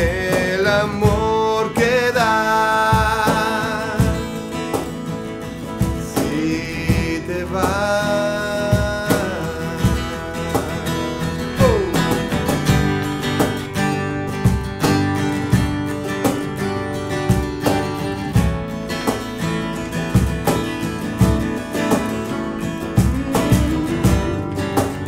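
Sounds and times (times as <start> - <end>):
bass guitar: 0.0 - 25.0
cajon beat: 0.0 - 25.0
guitars strummed: 0.0 - 25.0.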